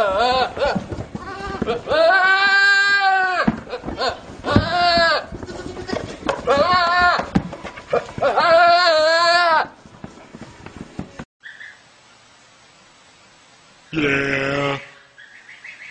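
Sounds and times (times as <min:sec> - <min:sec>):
goat screaming: 0:00.0 - 0:09.8.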